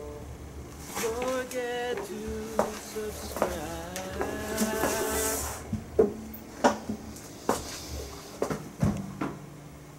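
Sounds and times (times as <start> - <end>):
person singing: 0.9 - 5.7.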